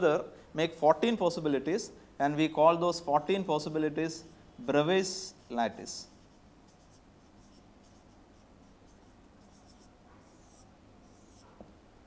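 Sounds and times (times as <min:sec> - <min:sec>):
pen scratching while writing: 0:06.1 - 0:11.6.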